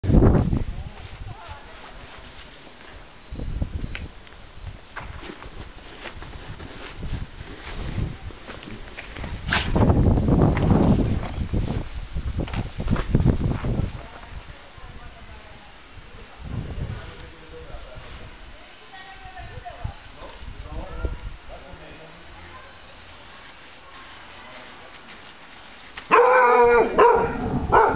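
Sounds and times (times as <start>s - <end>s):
low rumbling scuffle: 0.0s - 14.6s, 22.4s - 27.9s.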